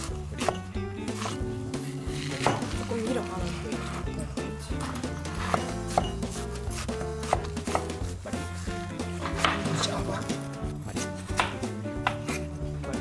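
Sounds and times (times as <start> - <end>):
knife chopping on cutting board: 0.0 - 3.2, 5.2 - 8.5, 9.2 - 12.8.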